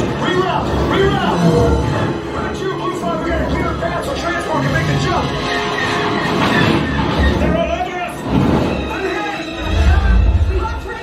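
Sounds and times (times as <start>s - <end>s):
deep rumbles: 0.0s - 11.0s
dramatic music: 0.0s - 11.0s.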